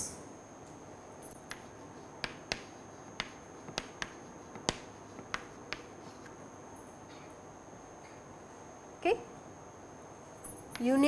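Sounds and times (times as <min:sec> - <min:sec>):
chalk tapping on chalkboard: 0:01.3 - 0:06.4.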